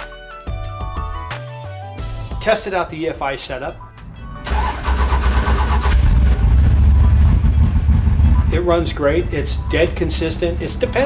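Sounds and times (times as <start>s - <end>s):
engine fast idle: 4.5s - 8.8s.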